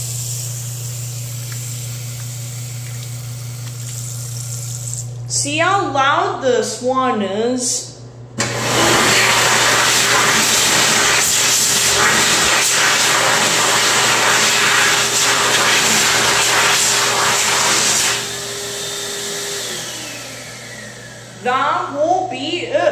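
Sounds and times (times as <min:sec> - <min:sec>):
hand dryer blowing: 0:00.0 - 0:05.2, 0:08.4 - 0:22.0
motor winding down whine: 0:13.8 - 0:21.4.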